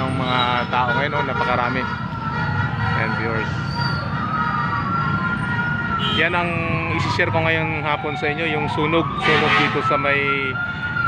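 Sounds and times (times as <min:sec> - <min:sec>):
emergency siren wailing: 0:00.0 - 0:11.0.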